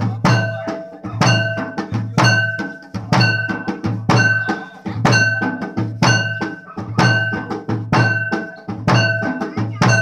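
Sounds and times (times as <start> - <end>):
heavy drum strokes: 0.0 - 10.0.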